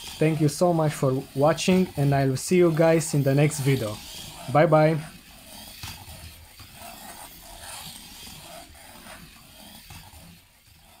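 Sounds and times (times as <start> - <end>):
small gear motors running: 0.0 - 11.0.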